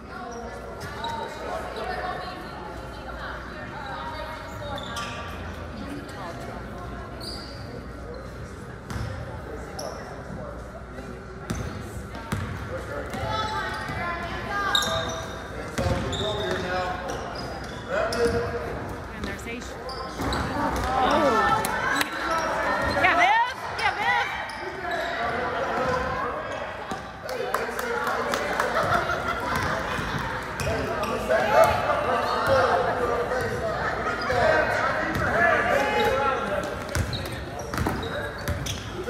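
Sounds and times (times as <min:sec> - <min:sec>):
players and spectators chatter: 0:00.0 - 0:39.0.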